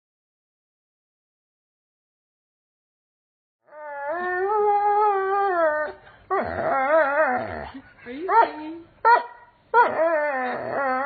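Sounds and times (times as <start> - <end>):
dog howling: 3.6 - 7.7, 9.8 - 11.0.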